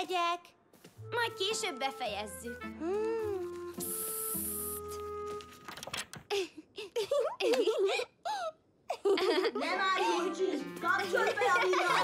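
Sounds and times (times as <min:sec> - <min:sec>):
soft background music: 0:00.7 - 0:06.0, 0:09.2 - 0:12.0
short hiss: 0:03.8 - 0:05.0.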